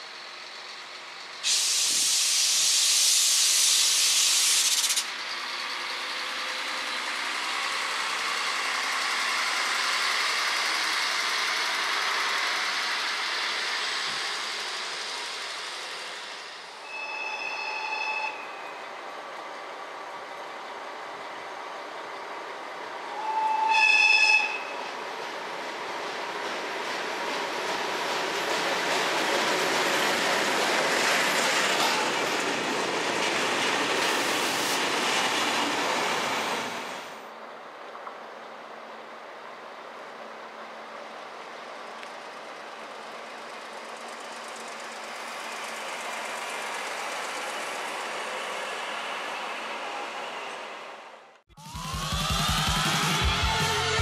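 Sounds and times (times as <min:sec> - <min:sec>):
approaching freight train: 0:00.0 - 0:54.0
air brakes hissing: 0:01.4 - 0:06.2
train horn blast: 0:23.1 - 0:24.8.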